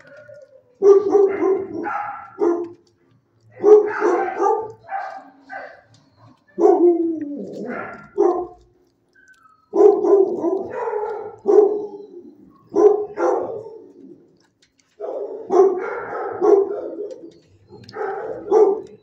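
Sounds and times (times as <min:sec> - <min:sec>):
dogs barking: 0:00.0 - 0:19.0.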